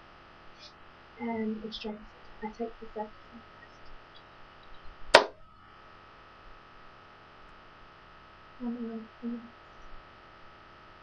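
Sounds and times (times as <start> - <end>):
thin electrical whine: 0.0 - 11.0
sharp click: 5.2 - 5.4.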